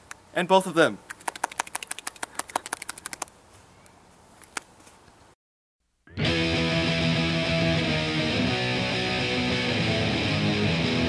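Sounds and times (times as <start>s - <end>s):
person clapping hands: 1.1s - 3.3s.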